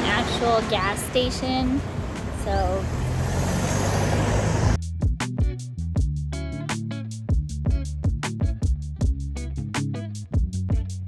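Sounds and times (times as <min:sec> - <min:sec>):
guitar music: 0:04.8 - 0:11.0.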